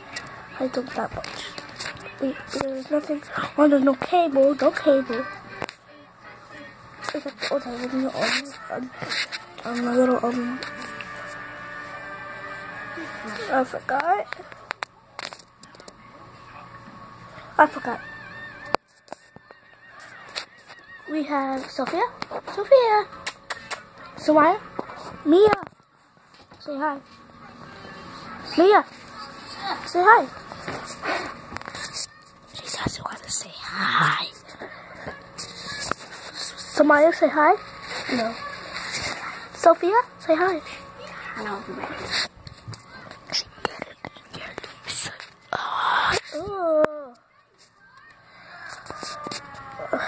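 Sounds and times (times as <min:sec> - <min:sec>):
person whispering softly: 0:32.6 - 0:34.5, 0:43.3 - 0:46.4.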